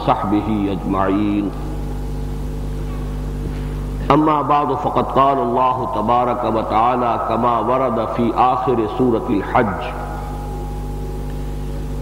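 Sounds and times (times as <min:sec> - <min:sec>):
electrical hum with hiss: 0:00.0 - 0:12.0
faint high whine: 0:00.0 - 0:12.0.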